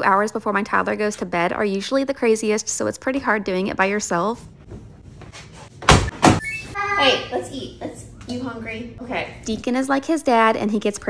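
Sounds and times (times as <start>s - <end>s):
washing machine door thumps: 5.8s - 6.4s.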